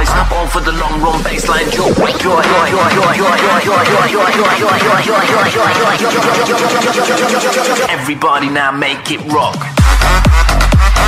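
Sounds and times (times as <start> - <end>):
fast repeating lead riff: 0.0 - 8.0
heavy deep bass: 0.0 - 8.0, 9.8 - 11.0
electronic dance music: 0.0 - 11.0.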